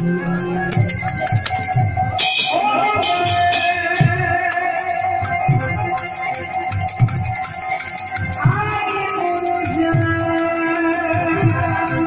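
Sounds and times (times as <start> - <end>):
bell-like metallic ringing: 0.0 - 12.0.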